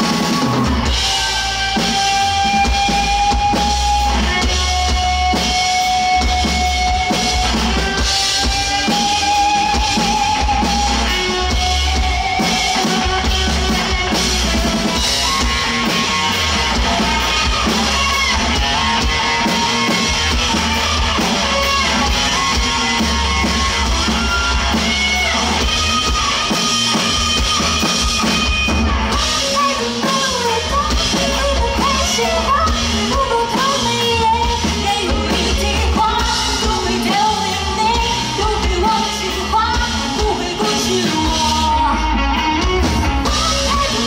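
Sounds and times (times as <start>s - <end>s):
drum kit: 0.0s - 44.0s
electric bass: 0.0s - 44.0s
electric guitar: 0.0s - 44.0s.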